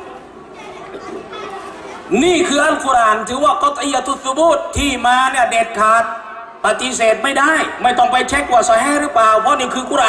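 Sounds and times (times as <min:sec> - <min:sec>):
faint background chatter: 0:00.0 - 0:02.7.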